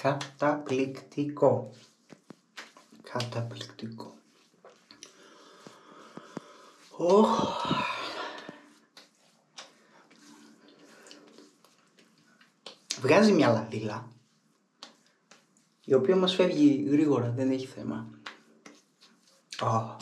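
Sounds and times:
hands rubbing skin: 0.0 - 16.8, 17.8 - 20.0
light pats on face: 0.0 - 16.8, 17.8 - 20.0.

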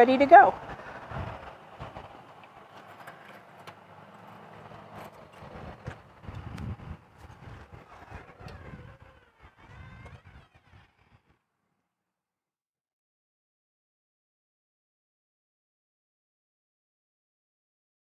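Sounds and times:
low rumbles: 0.0 - 11.2.

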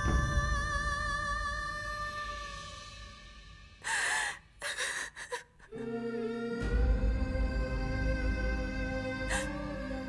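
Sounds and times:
woman sobbing: 3.8 - 5.9, 9.3 - 9.7.

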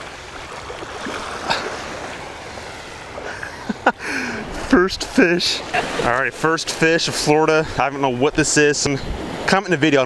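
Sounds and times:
surf waves washing onto beach: 0.0 - 10.0.

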